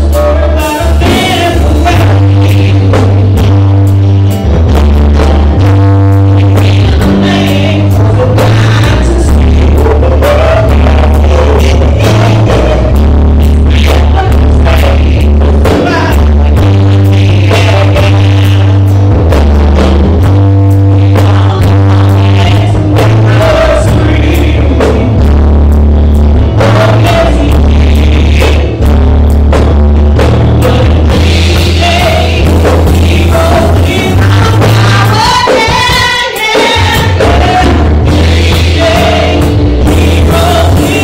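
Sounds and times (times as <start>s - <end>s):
group of singers: 0.0s - 3.7s, 5.6s - 19.5s, 20.3s - 25.4s, 26.3s - 28.9s, 30.2s - 41.0s
band accompaniment: 0.0s - 41.0s
drums: 0.0s - 41.0s
keyboard with deep bass notes: 0.0s - 41.0s.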